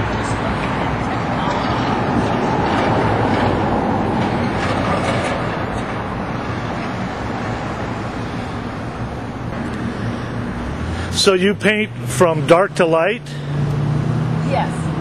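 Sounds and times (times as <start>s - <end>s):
passing cars rushing: 0.0s - 15.0s.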